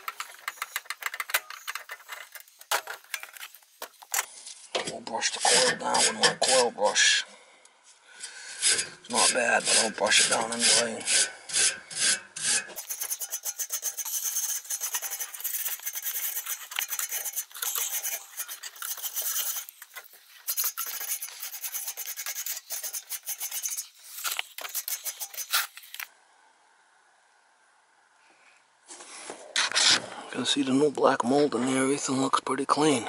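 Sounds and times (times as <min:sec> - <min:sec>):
brush scrubbing metal fins: 0:00.0 - 0:04.1, 0:08.6 - 0:26.1.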